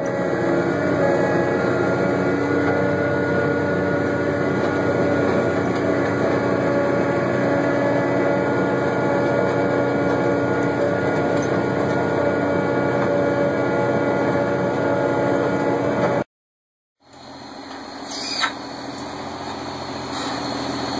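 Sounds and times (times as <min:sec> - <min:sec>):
engine drone: 0:00.0 - 0:16.3, 0:17.0 - 0:20.9.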